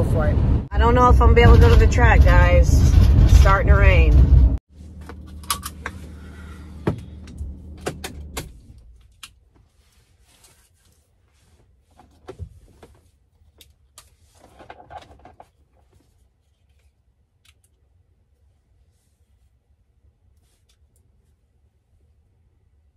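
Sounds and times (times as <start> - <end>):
van engine idling: 4.7 - 9.0
sharp clicks and rustles: 4.9 - 6.2, 6.8 - 17.9.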